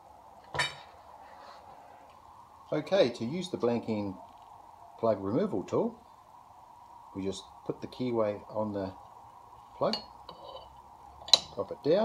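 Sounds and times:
light metallic clink: 9.9s - 11.6s.

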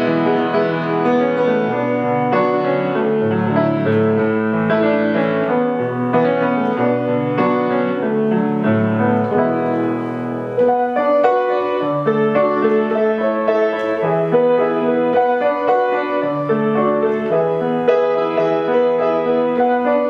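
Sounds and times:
low piano bass notes: 0.0s - 20.0s
piano melody: 0.0s - 20.0s.

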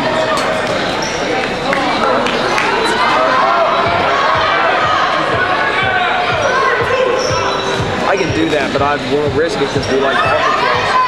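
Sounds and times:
players shouting and chattering: 0.0s - 11.0s.

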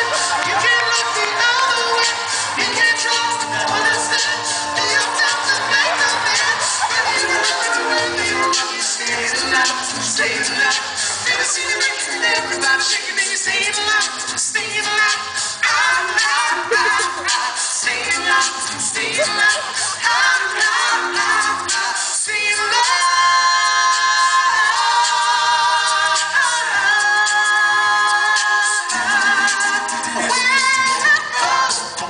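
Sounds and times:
male a cappella group singing: 0.0s - 32.0s.

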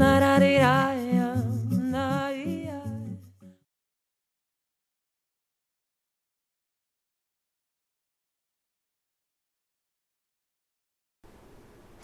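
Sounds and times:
acoustic guitar: 0.0s - 3.7s.

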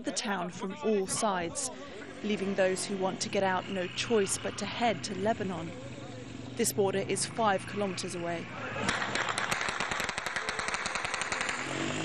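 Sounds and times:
automatic gunfire: 8.8s - 12.0s.

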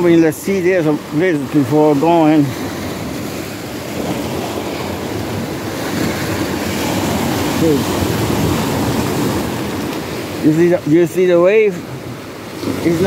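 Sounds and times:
waves breaking over rocks: 0.0s - 13.0s.

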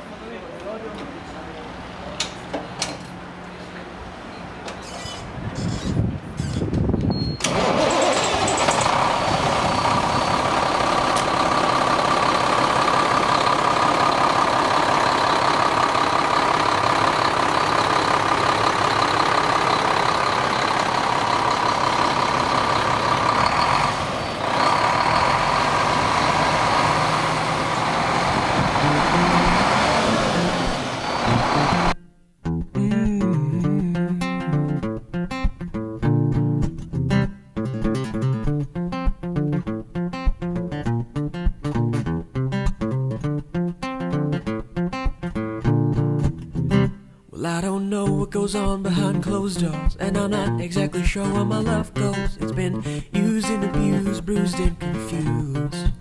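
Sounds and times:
diesel engine cranking and idling: 0.6s - 32.0s.

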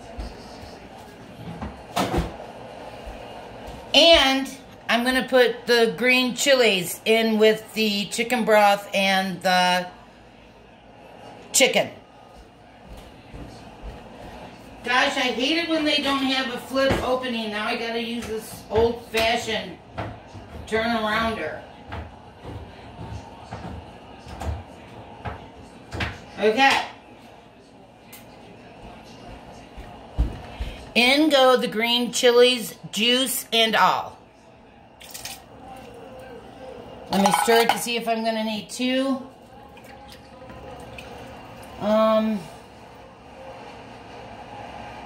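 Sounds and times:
kitchen handling noise: 37.1s - 38.1s.

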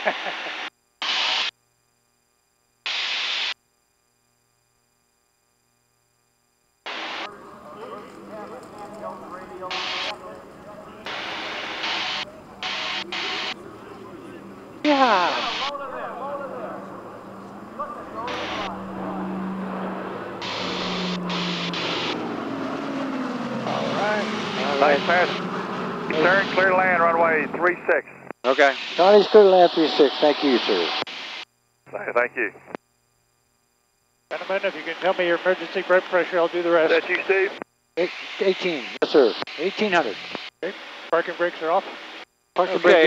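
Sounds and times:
propeller plane engines droning: 6.9s - 31.0s
short bursts of voices: 14.8s - 16.8s.

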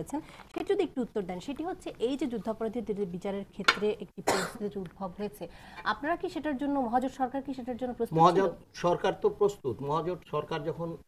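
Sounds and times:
short cough: 4.2s - 4.6s.

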